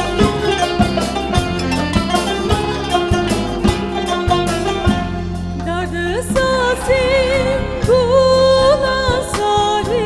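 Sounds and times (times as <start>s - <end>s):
low drum strikes: 0.0s - 8.1s
plucked strings: 0.0s - 8.2s.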